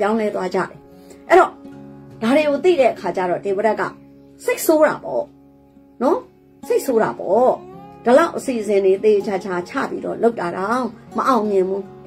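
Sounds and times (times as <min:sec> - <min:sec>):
woman speaking: 0:00.0 - 0:01.6, 0:02.2 - 0:05.3, 0:06.0 - 0:12.0
faint background music: 0:00.0 - 0:12.0.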